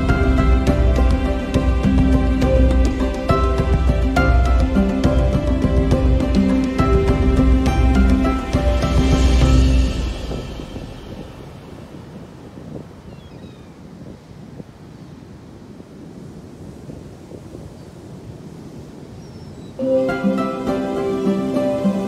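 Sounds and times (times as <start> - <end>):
wind on microphone: 0.0 - 22.0.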